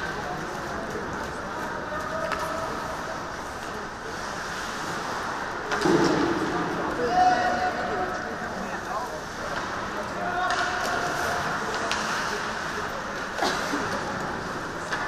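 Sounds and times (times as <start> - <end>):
hockey sticks and puck clacking: 0.0 - 8.2, 9.2 - 15.0
skates on ice: 8.8 - 15.0.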